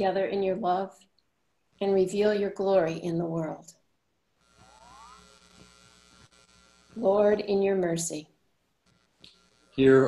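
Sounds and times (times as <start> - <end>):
faint electrical mains hum: 0.0 - 10.0
faint rising tone: 4.6 - 5.3.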